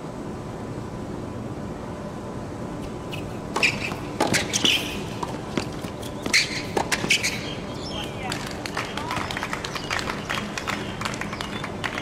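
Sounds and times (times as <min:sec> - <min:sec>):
sneaker squeaks: 0:03.1 - 0:08.2
footsteps on hard court: 0:03.6 - 0:07.2.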